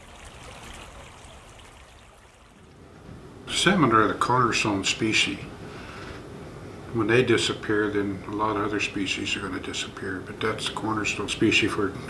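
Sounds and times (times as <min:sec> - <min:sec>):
stream running over gravel: 0:00.0 - 0:02.8.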